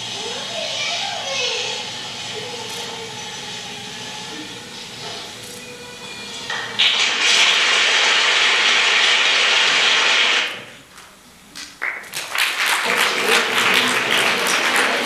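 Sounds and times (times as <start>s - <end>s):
loud steady hiss: 6.2s - 11.5s
audience applauding: 6.8s - 10.7s, 11.6s - 15.0s.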